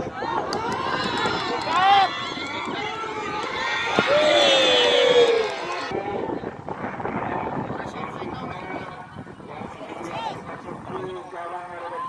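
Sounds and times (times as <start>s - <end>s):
long drawn-out shout: 0.0s - 6.0s
murmur of crowd chatter: 0.0s - 12.0s.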